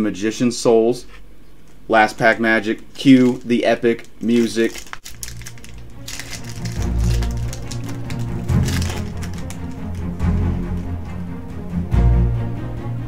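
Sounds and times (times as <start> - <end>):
foil pack crackling torn open: 2.7 - 10.9
dramatic music with deep bass: 5.1 - 13.0.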